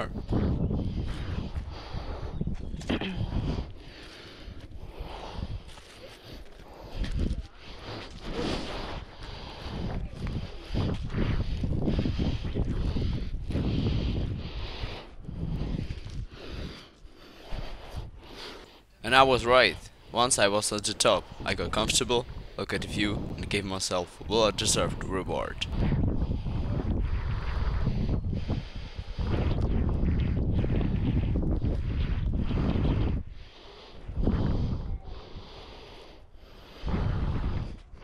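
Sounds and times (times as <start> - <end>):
wind rumbling on microphone: 0.0 - 38.0.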